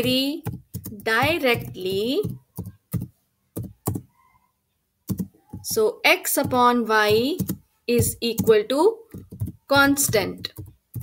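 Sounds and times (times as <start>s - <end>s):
computer keyboard keystrokes: 0.4s - 4.1s, 5.1s - 5.7s, 6.4s - 7.6s, 8.3s - 11.0s.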